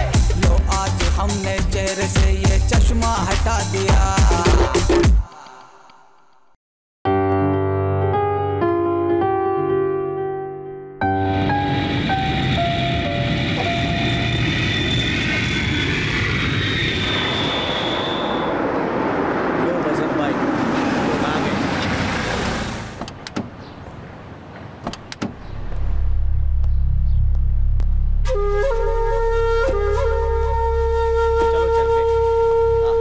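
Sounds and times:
high jet whine: 11.2s - 22.8s, 25.3s - 32.7s
jet airliner rushing noise: 11.2s - 23.3s
sharp clicks: 23.0s - 23.5s, 24.8s - 25.9s
low steady hum: 25.4s - 28.4s.

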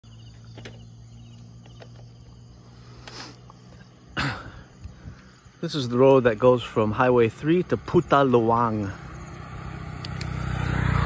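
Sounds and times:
insects chirping in high trills: 0.0s - 10.1s
brief hiss: 2.9s - 3.5s.

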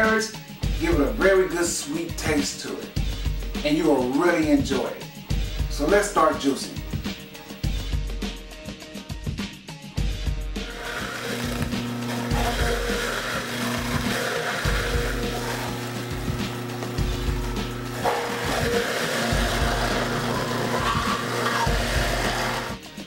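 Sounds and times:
background music: 0.0s - 23.0s
juicer motor humming: 10.6s - 22.8s.

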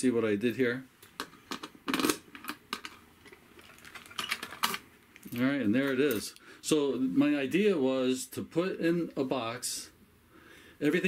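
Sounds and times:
metal lid opening: 1.5s - 3.0s.

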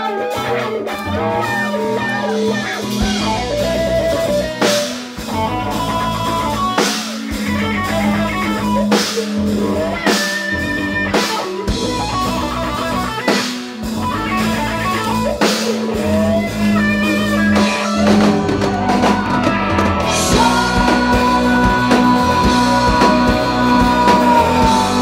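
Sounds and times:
drum kit: 0.0s - 25.0s
electric guitar lead lines: 0.0s - 25.0s
held keyboard or bass note: 1.1s - 6.8s.

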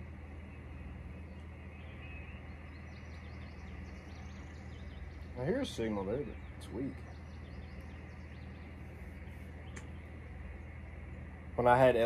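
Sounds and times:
low hum: 0.0s - 12.0s
small birds chirping: 0.0s - 12.0s.

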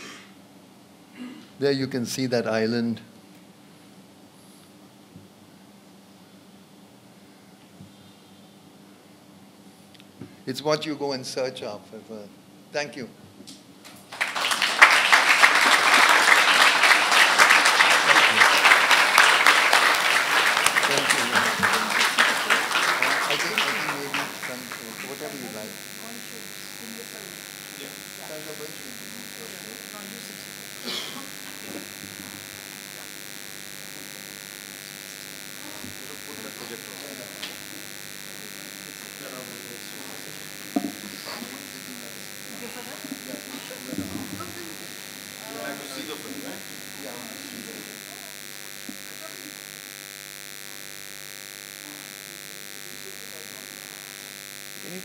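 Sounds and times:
electrical buzz and hiss: 13.5s - 55.0s.

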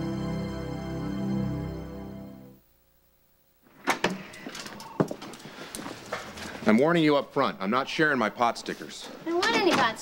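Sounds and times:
man speaking: 6.6s - 9.2s.

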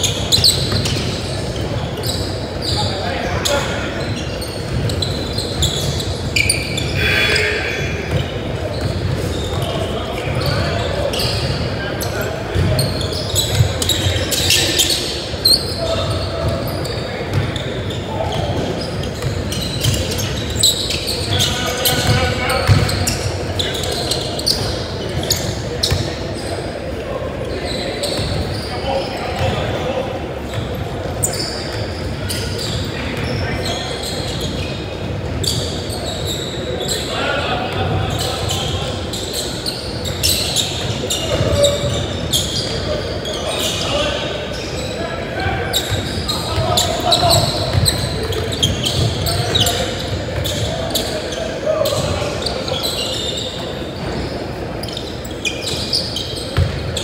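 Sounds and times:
players calling out: 0.0s - 56.8s.

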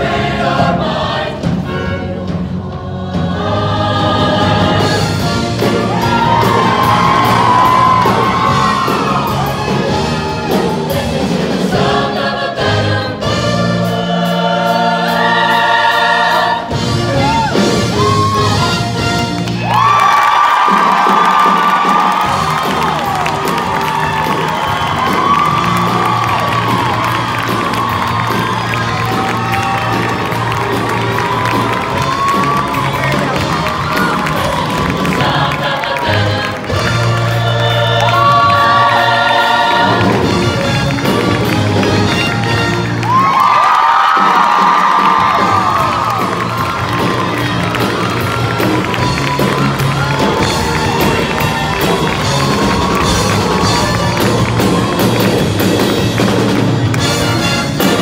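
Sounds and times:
choir singing with instruments: 0.0s - 19.2s, 31.2s - 41.8s
audience cheering and whooping: 5.6s - 11.0s, 17.1s - 37.1s, 37.7s - 57.1s.

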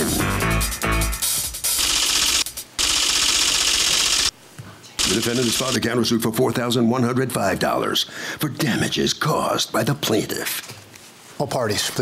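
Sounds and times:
loud rapid rattling: 1.8s - 4.3s, 5.0s - 5.8s.

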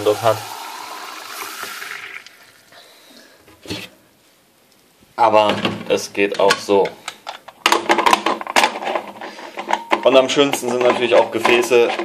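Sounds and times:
tap water pouring into a jug: 0.0s - 2.8s.

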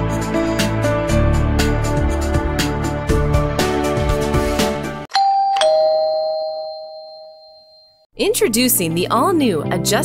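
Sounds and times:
background music: 0.0s - 5.1s
two-note doorbell chime: 5.1s - 8.1s.

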